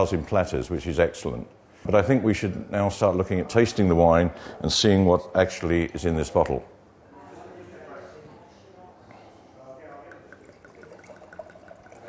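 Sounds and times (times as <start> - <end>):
bottle glugging: 10.0 - 12.0
wine pouring into glass: 10.0 - 12.0.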